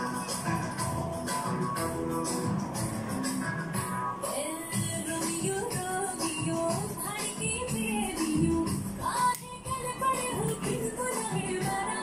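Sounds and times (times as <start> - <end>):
dance song with singing: 0.0 - 12.0.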